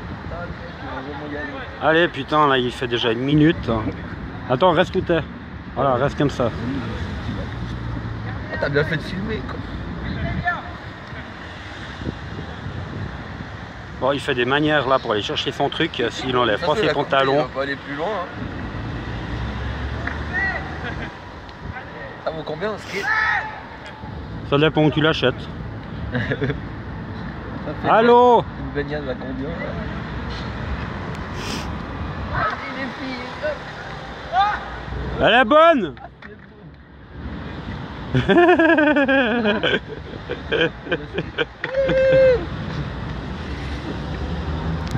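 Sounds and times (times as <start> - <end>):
wind: 0.0 - 44.9
young man yelling: 20.3 - 20.8, 23.0 - 23.8, 32.3 - 33.0, 34.3 - 35.9, 41.7 - 42.5
motor vehicle rumbling past: 42.2 - 44.9.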